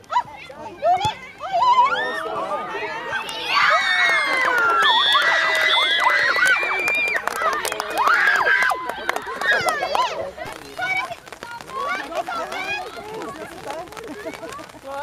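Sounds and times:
girls shouting and cheering: 0.1s - 14.8s.

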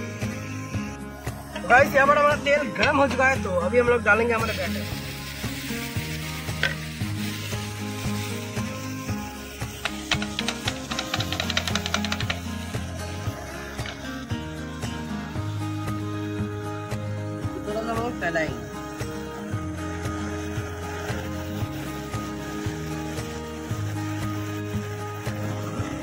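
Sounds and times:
batter sizzling in hot oil: 0.0s - 26.0s.

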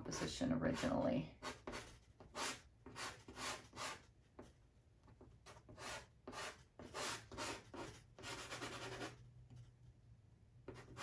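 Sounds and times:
pastel stick scratching on paper: 0.0s - 4.6s, 5.5s - 9.7s.

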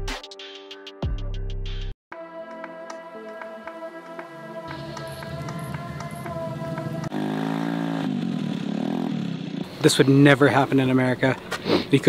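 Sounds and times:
background music with steady beat: 0.0s - 7.1s.

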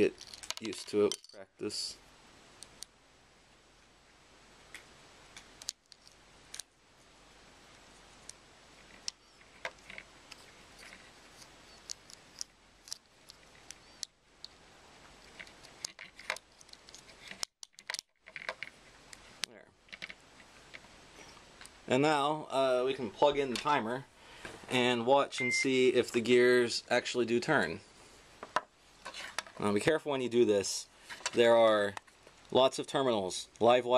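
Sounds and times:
faint steady hiss: 0.0s - 33.9s.

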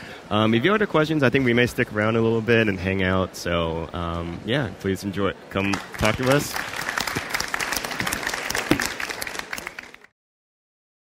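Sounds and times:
audience applauding: 5.6s - 10.1s.

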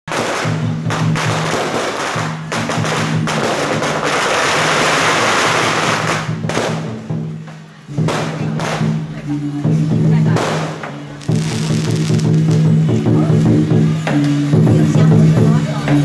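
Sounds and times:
firecrackers crackling: 0.1s - 16.0s
music with low bass line: 5.8s - 16.0s.

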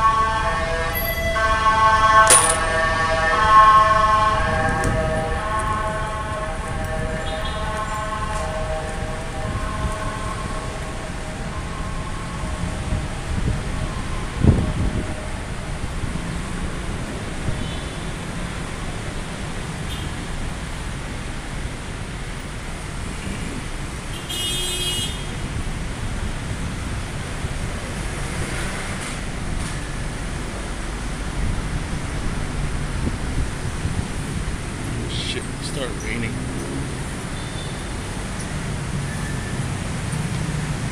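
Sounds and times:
city road traffic rumble: 0.0s - 40.9s.

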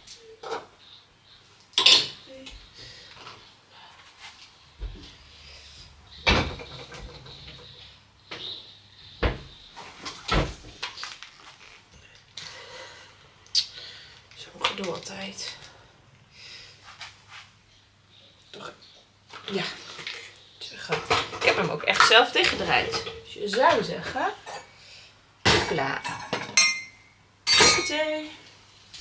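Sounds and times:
dishes clattering: 1.8s - 2.2s, 20.9s - 24.7s, 25.5s - 28.0s
cupboard doors opening and closing: 6.2s - 7.6s, 9.2s - 10.8s.

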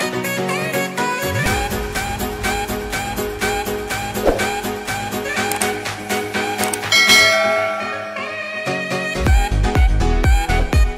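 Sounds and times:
background music: 0.0s - 10.9s
notification bell ding: 6.9s - 8.4s.

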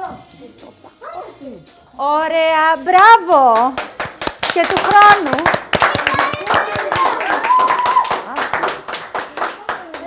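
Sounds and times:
people clapping: 2.6s - 10.0s.

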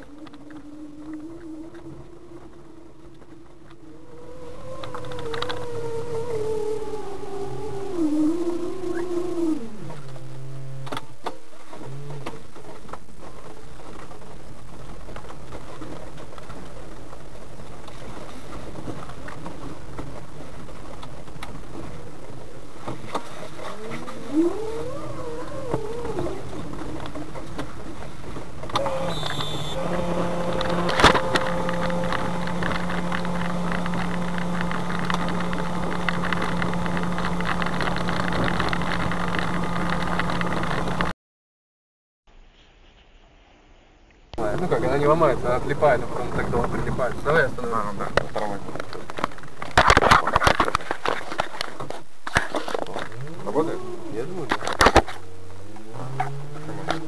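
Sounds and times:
steady low hum: 0.0s - 41.1s, 43.8s - 57.0s
car cabin rumble: 8.9s - 41.1s.

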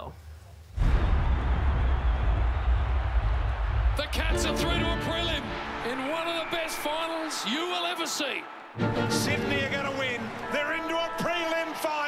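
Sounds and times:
excited commentator's voice: 4.0s - 8.5s, 9.1s - 12.0s.

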